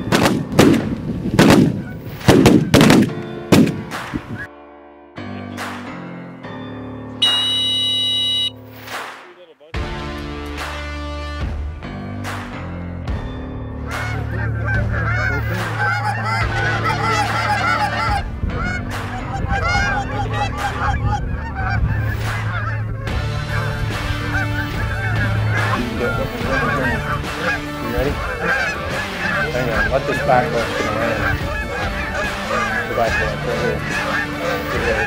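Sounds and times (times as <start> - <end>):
geese honking: 7.2 - 8.5, 13.8 - 35.0.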